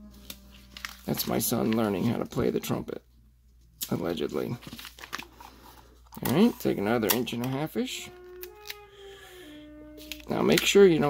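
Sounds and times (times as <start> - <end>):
faint trumpet notes: 7.8 - 11.0.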